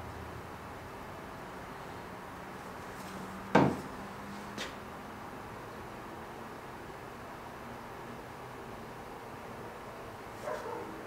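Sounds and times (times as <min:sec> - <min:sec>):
sharp wooden knock: 0:03.5 - 0:03.9.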